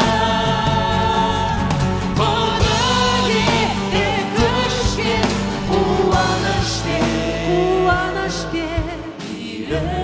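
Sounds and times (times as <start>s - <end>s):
acoustic guitar: 0.0s - 10.0s
drums: 0.0s - 10.0s
electric guitar: 0.0s - 10.0s
keyboard: 0.0s - 10.0s
singers performing praise song: 0.0s - 10.0s.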